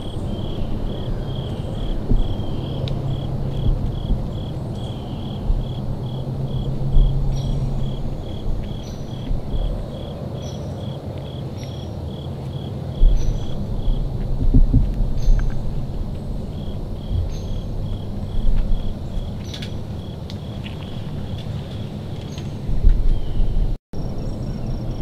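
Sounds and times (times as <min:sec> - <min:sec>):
low rumble: 0:00.0 - 0:11.4, 0:12.0 - 0:25.0
cricket chirping: 0:00.0 - 0:21.5, 0:24.0 - 0:25.0.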